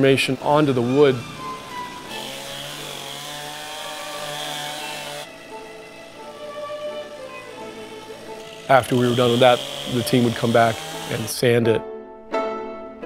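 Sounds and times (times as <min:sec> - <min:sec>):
chainsaw running: 0:00.0 - 0:11.5
soft music: 0:00.0 - 0:13.0.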